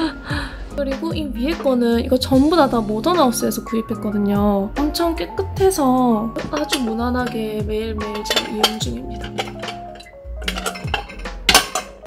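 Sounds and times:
soft background music: 0.0 - 12.0
dishes clinking: 6.4 - 12.0.

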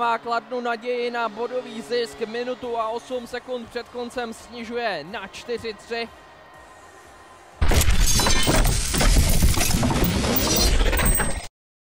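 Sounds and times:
faint arena ambience: 0.0 - 7.7.

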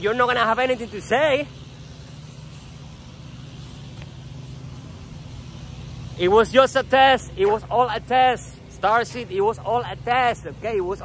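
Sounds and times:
faint hiss: 0.0 - 11.0
vehicle engine hum: 0.0 - 11.0.

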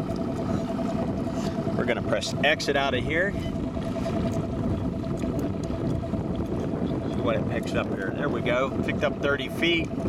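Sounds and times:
outboard motor idling: 0.0 - 10.0.

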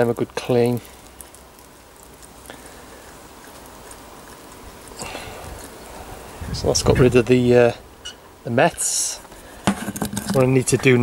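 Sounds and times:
small ticks: 0.6 - 5.9.

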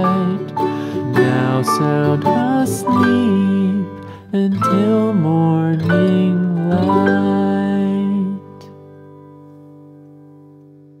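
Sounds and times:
soft lullaby chord ringing: 0.0 - 9.0.

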